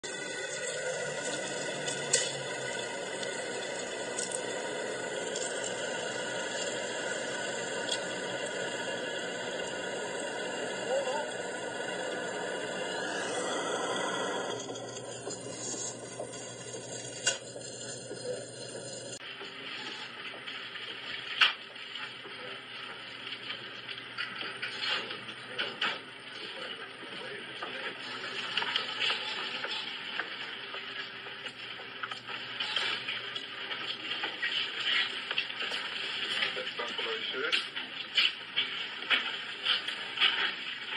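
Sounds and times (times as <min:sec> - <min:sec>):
steady hiss: 0:00.1 - 0:40.9.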